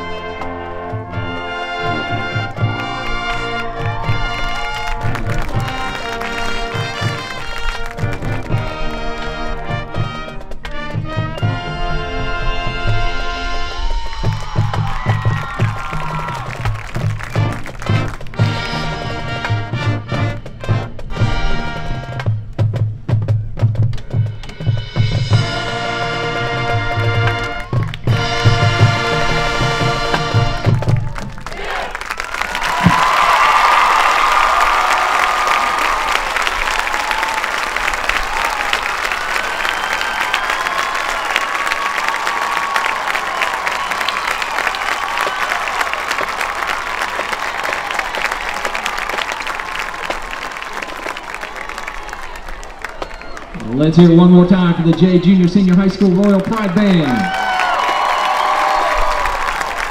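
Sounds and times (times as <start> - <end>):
crowd applauding and cheering: 0.0 - 22.3, 24.2 - 59.9
marching band brass and drums: 0.0 - 59.9.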